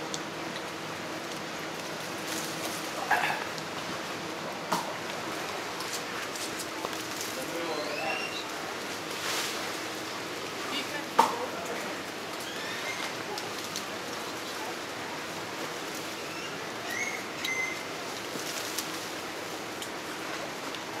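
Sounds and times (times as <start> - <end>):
steady outdoor hiss: 0.0 - 21.0.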